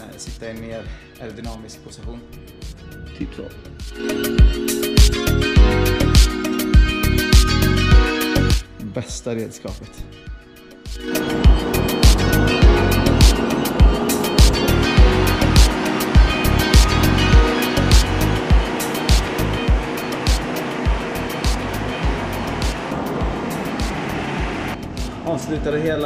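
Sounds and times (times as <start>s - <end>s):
background music with steady beat: 0.0s - 26.0s.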